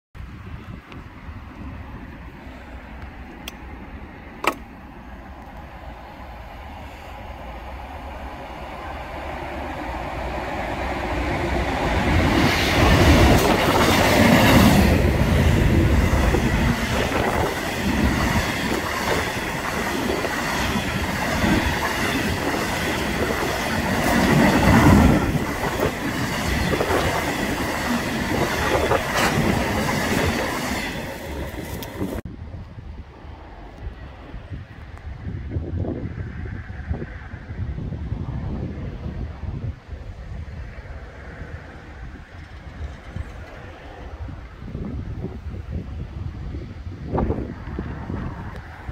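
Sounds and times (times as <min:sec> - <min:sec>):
freight train rumbling on rails: 0:00.2 - 0:48.9.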